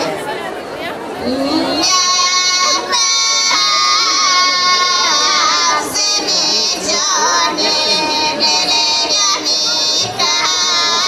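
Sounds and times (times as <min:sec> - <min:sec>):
women singing unaccompanied: 0:01.2 - 0:11.0.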